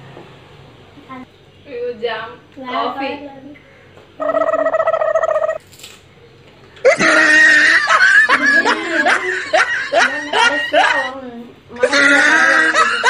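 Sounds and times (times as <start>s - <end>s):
laughter bursts: 6.8s - 11.2s, 11.8s - 13.0s.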